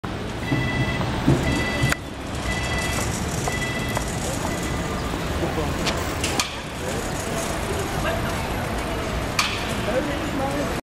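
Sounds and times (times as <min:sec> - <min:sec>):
street noise: 0:00.0 - 0:10.8
crossing signal beeping: 0:00.4 - 0:05.5.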